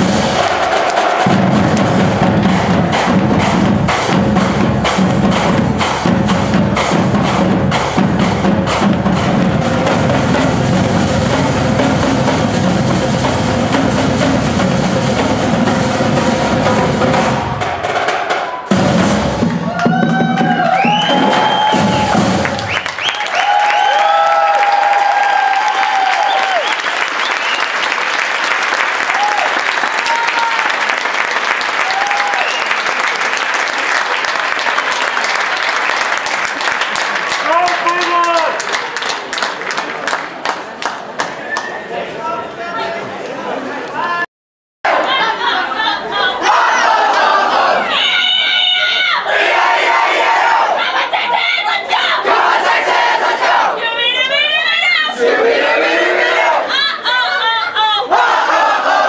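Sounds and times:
audience clapping and cheering: 0.0s - 4.0s, 19.4s - 41.8s
marimbas xylophones and drums playing: 0.0s - 20.5s.

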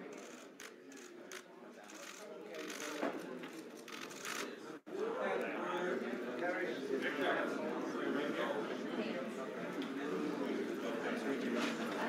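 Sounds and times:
chatter of people: 0.0s - 12.0s.

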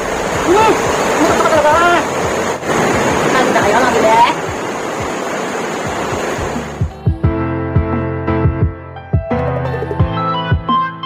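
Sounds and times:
background music with beat: 6.4s - 11.0s.

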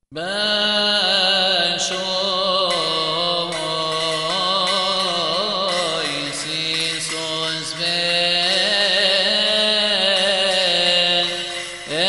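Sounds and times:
voice singing a chant: 0.1s - 12.0s
steady held notes: 0.8s - 12.0s.

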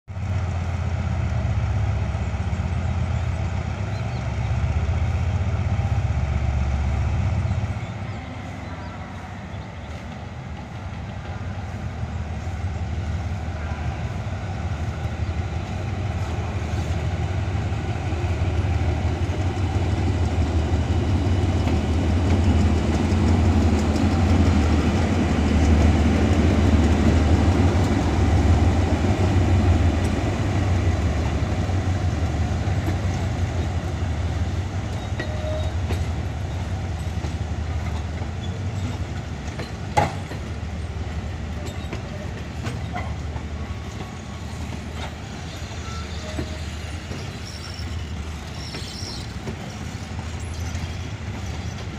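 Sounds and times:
locomotive engine drone: 0.1s - 51.9s.

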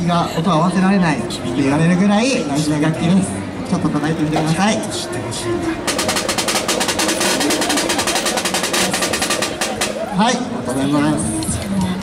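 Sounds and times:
snare drum played with sticks: 5.8s - 10.2s.

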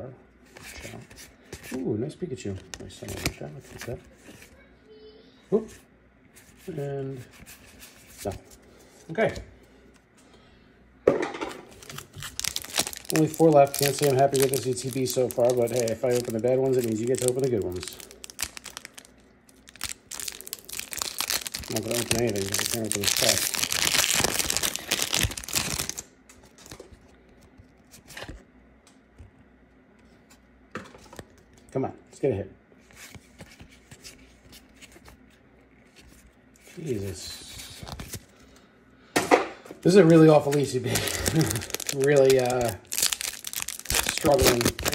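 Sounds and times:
foil card pack rustling: 11.7s - 27.0s, 39.9s - 44.9s.

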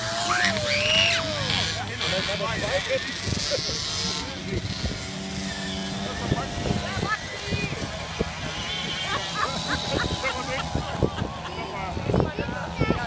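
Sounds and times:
moped engines racing: 0.0s - 13.0s
spectators chattering: 0.0s - 13.0s.

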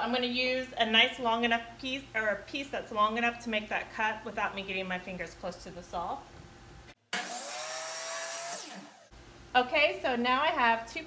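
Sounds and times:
miter saw cutting wood: 7.1s - 9.1s.

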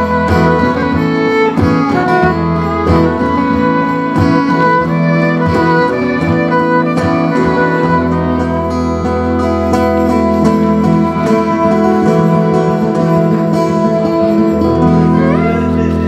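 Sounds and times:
fiddle playing: 0.0s - 16.0s
strummed acoustic guitars: 0.0s - 16.0s.

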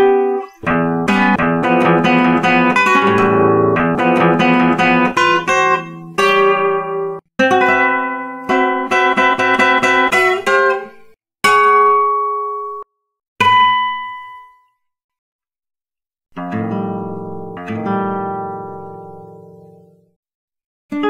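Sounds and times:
solo classical guitar: 0.0s - 14.6s, 16.3s - 20.2s.

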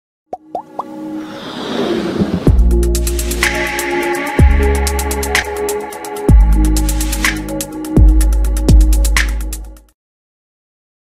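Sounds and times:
whoosh: 1.2s - 3.7s
rising pops: 1.7s - 2.7s.

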